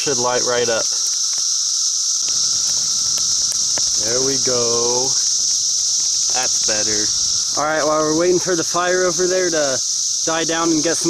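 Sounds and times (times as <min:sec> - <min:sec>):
cicadas chorus: 0:00.0 - 0:11.0
fire crackling: 0:00.0 - 0:11.0.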